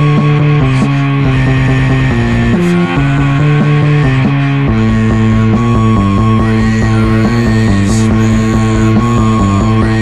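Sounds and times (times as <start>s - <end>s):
rock music with guitar: 0.0s - 10.0s.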